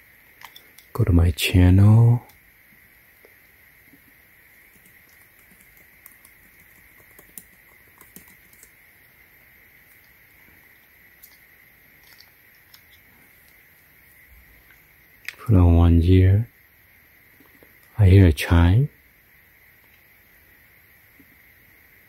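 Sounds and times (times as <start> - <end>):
steady low hiss: 0.0 - 22.0
keyboard typing clicks: 4.7 - 8.7.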